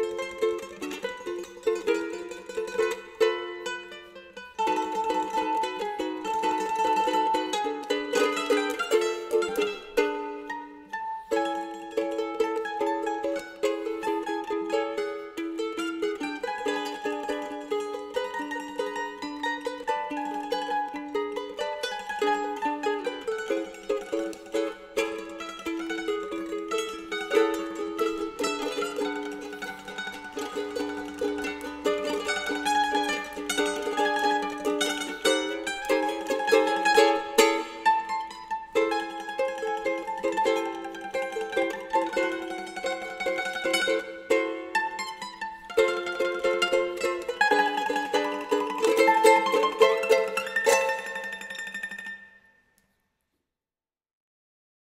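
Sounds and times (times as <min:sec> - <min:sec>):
ukulele and cavaquinho playing: 0:00.0 - 0:52.5.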